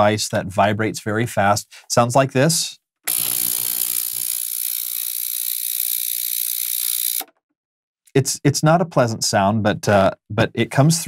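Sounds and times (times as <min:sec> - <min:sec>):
ultrasonic cleaner harsh buzz: 0:03.1 - 0:04.4.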